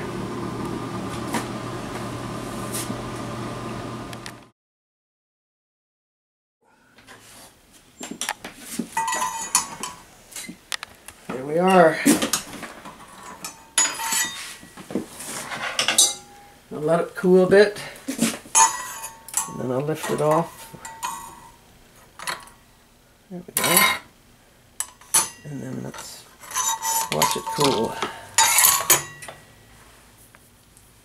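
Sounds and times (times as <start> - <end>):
metal clinks and knocks: 8.0 - 10.0, 18.5 - 21.6, 26.4 - 29.5.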